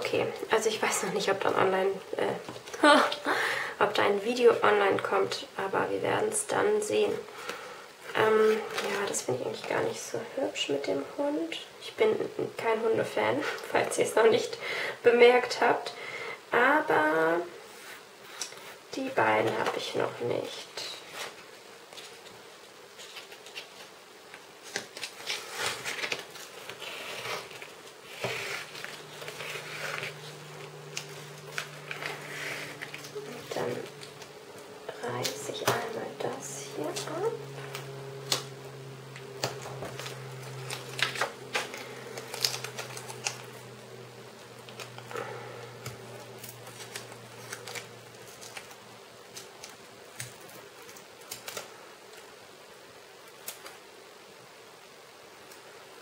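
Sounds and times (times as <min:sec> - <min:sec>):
low steady hum: 0:00.0 - 0:56.0
plastic sticker sheet crinkling: 0:24.6 - 0:43.7, 0:44.4 - 0:51.7.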